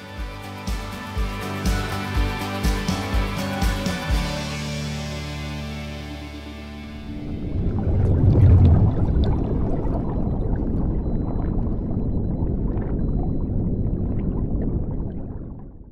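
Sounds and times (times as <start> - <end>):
underwater bubbling rumble: 6.8 - 15.9.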